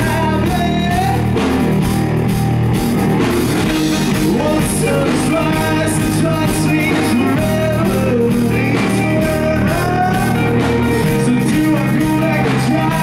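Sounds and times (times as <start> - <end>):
man singing lead vocal: 0.0 - 1.4, 3.9 - 13.0
live rock band: 0.0 - 13.0.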